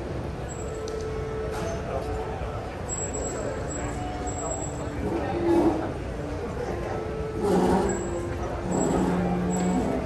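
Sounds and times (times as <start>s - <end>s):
crowd noise echoing in hall: 0.0s - 10.0s
low tone: 2.8s - 10.0s.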